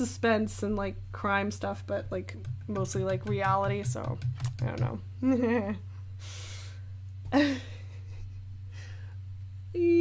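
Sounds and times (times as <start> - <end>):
steady low hum: 0.0 - 10.0
woman laughing: 5.2 - 5.9, 7.3 - 8.6.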